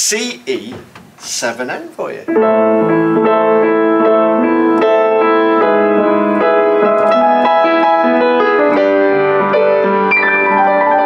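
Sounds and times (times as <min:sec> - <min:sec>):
upright piano playing: 0:00.0 - 0:11.0.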